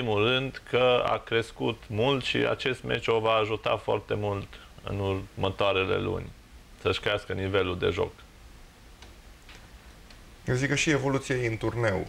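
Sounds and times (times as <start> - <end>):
man speaking: 0.0 - 8.3, 10.4 - 12.0
faint low hum: 0.0 - 12.0
faint clicks: 9.0 - 10.3.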